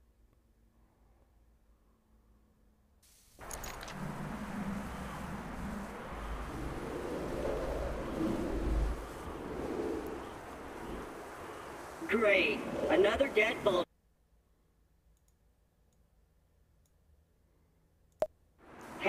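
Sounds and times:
blizzard wind with low rumble: 0:00.0 - 0:13.9, 0:18.6 - 0:19.0.

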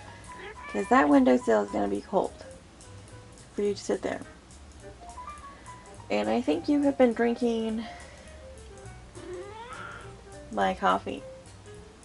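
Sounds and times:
soft background music: 0:00.0 - 0:12.0
cat meowing: 0:00.3 - 0:01.2, 0:09.2 - 0:10.1.

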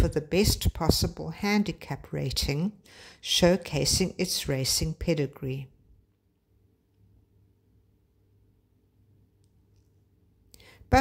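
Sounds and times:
person speaking: 0:00.0 - 0:05.7.

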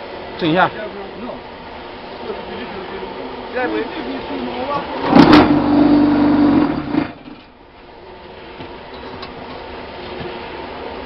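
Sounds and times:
vibration motor humming: 0:05.0 - 0:07.3.

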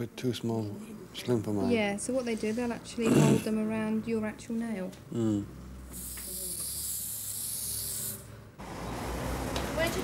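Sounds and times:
aerosol spray can hissing: 0:05.9 - 0:08.3
low street traffic rumble: 0:08.0 - 0:10.0.

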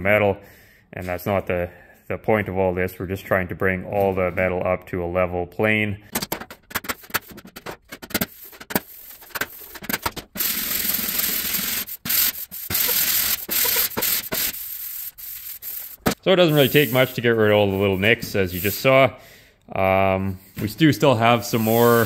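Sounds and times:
file scraping on sheet steel: 0:10.4 - 0:16.0.

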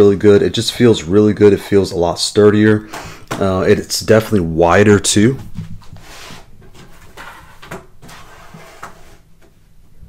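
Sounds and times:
keyboard covers scraping on wood: 0:06.0 - 0:09.2.

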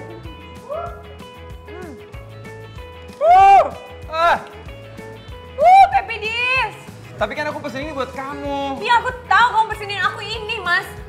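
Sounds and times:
background music with beat: 0:00.0 - 0:11.0
woman crying out: 0:00.1 - 0:01.1, 0:05.6 - 0:06.1.

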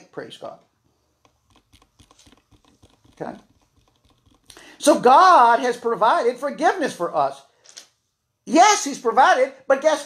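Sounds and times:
faint scattered clicks: 0:00.6 - 0:04.7
man speaking: 0:03.1 - 0:03.5, 0:04.8 - 0:07.5, 0:08.5 - 0:10.0.

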